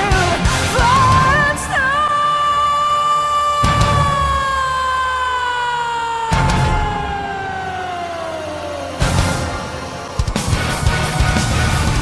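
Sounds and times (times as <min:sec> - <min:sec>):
woman singing long high note: 0:00.8 - 0:09.0.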